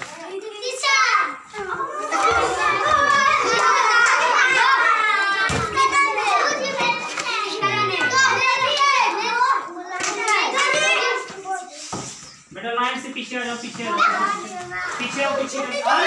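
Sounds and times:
children chattering: 0:00.0 - 0:16.0.

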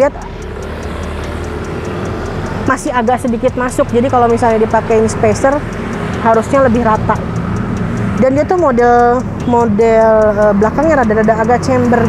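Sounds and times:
engine hum: 0:00.0 - 0:12.0
road noise: 0:00.0 - 0:12.0.

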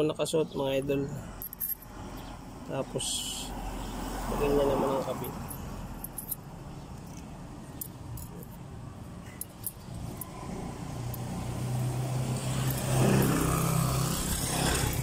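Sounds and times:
vehicle engine passing by: 0:09.9 - 0:15.0.

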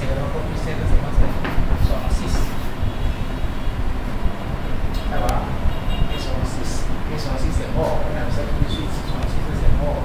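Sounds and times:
man's voice: 0:05.1 - 0:10.0.

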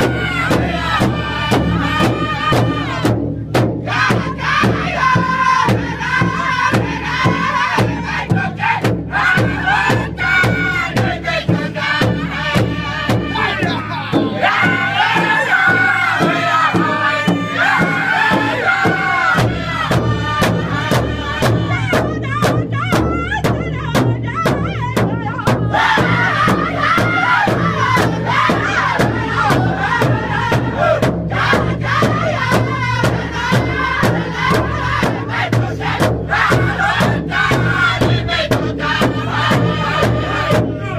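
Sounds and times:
men singing high-pitched unison: 0:00.0 - 0:03.1, 0:03.8 - 0:40.9
large drum beating: 0:00.0 - 0:40.9.

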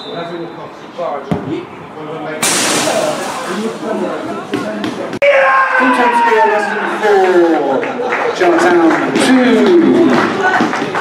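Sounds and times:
spectators' voices: 0:02.2 - 0:05.3, 0:05.9 - 0:11.0
crowd noise rush: 0:02.4 - 0:05.3.

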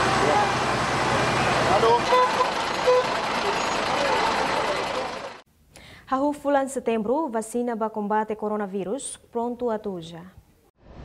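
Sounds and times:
outdoor street noise: 0:00.0 - 0:05.4.

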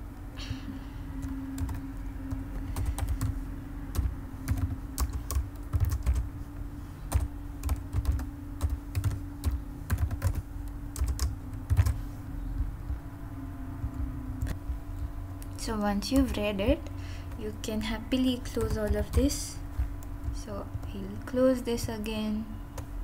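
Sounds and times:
computer keyboard typing: 0:01.2 - 0:06.3, 0:07.1 - 0:12.0, 0:18.4 - 0:22.0.

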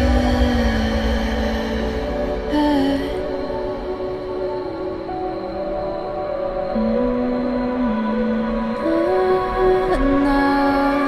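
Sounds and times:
rumbling hissy backing: 0:00.0 - 0:03.6.

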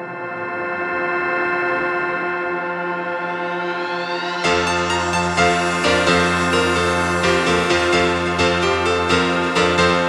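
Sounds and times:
sustained synthesizer chord: 0:00.0 - 0:10.0.

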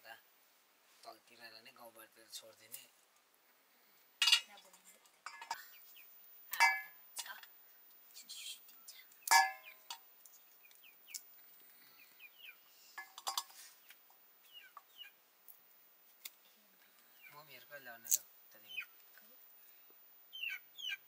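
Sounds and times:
metal bowl clinking and ringing: 0:04.2 - 0:04.5, 0:05.3 - 0:05.7, 0:06.5 - 0:07.0, 0:09.3 - 0:09.7.

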